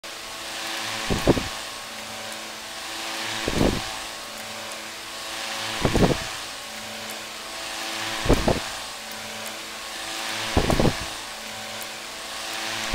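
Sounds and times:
electric fan motor hum: 0.0 - 12.9
rushing air: 0.2 - 1.9, 3.2 - 4.2, 5.7 - 6.6, 8.1 - 8.9, 10.0 - 11.2
air gust buffeting microphone: 0.9 - 1.8, 3.4 - 4.2, 5.6 - 6.6, 8.0 - 8.9, 10.0 - 11.2.

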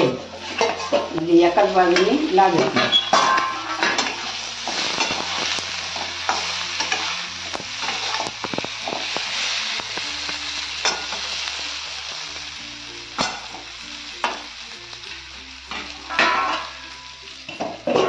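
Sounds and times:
metal spatula scraping a pan: 0.0 - 9.4, 15.7 - 18.0
vegetables sizzling in oil: 0.0 - 18.0.

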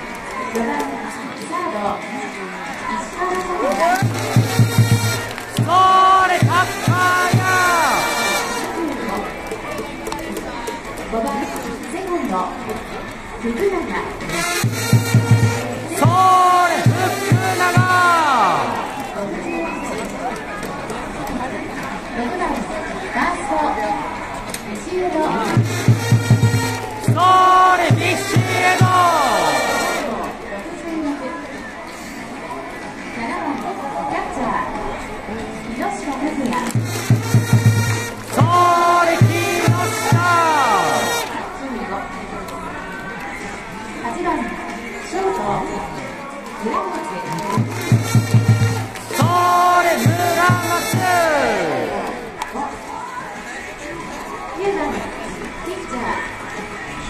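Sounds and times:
fans shouting: 0.0 - 35.4, 36.6 - 57.0
drum beats: 3.7 - 11.7, 14.2 - 19.0, 25.4 - 30.1, 36.6 - 41.3, 47.5 - 52.2
drum thumps: 4.0 - 7.7, 25.5 - 29.2
fans chanting: 4.0 - 8.8, 14.4 - 19.1, 25.3 - 30.4, 37.9 - 41.4, 47.6 - 52.4
trumpets playing fanfare: 4.0 - 9.1, 14.3 - 18.8, 25.4 - 30.3, 36.8 - 41.5, 47.7 - 52.1.

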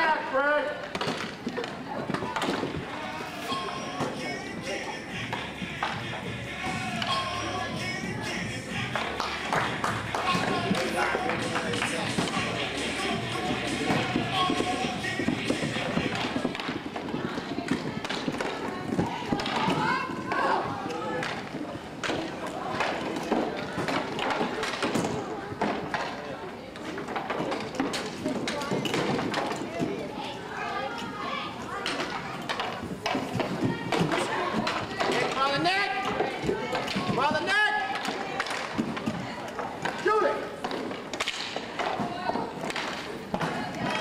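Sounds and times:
voices of players and spectators: 0.0 - 44.0
sticks and puck clacking: 0.8 - 44.0.

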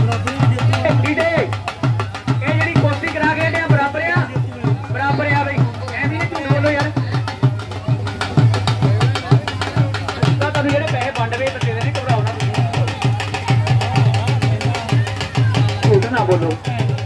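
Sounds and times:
drum fast steady beat: 0.0 - 17.0
voices: 0.0 - 17.0.

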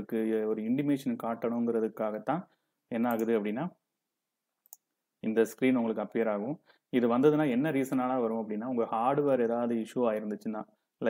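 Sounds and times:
man talking: 0.0 - 3.8, 5.2 - 10.8
computer mouse click: 3.0 - 3.4.

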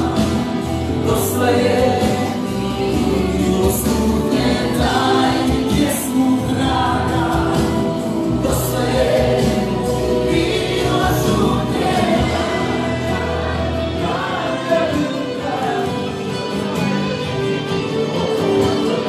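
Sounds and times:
choir singing with accompaniment: 0.0 - 19.0.

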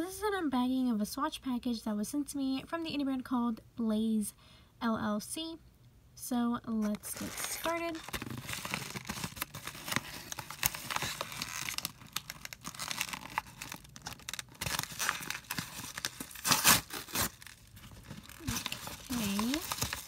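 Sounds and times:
packaging tearing and crinkling: 6.8 - 20.0.

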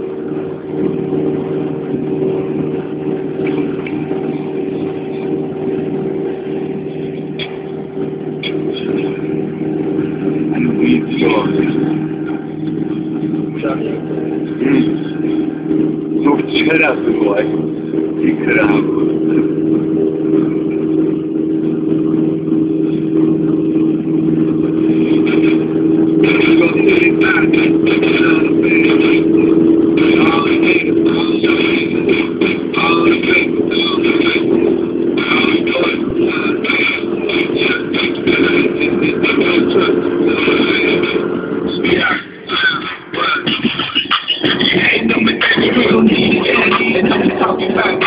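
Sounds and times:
car engine cruising: 0.0 - 48.0
music on car stereo: 0.0 - 48.0
road noise: 0.0 - 48.0.

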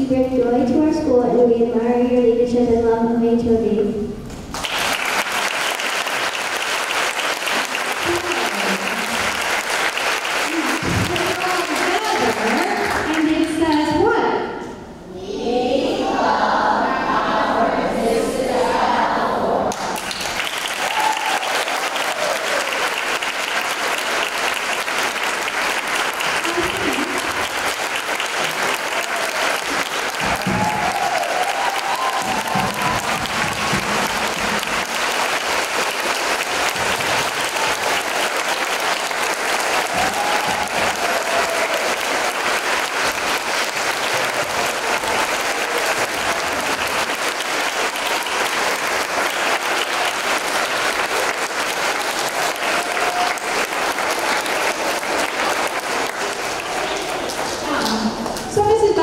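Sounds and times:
children clapping: 4.4 - 13.9, 19.7 - 58.8
voices shouting and cheering: 20.8 - 22.8, 30.2 - 33.4, 39.9 - 42.0.

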